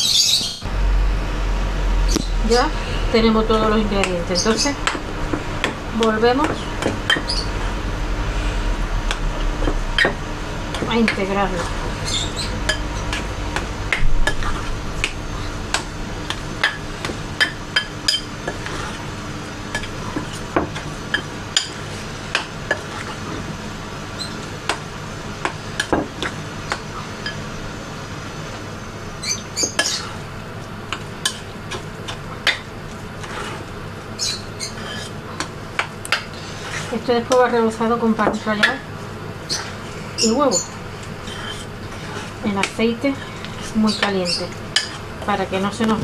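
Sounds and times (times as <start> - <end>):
steady low hum: 0.6 - 46.0.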